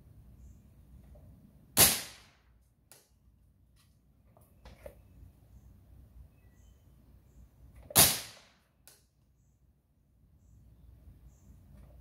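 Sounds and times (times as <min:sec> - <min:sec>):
pellet pistol shot: 0:01.8 - 0:02.5, 0:07.9 - 0:08.6.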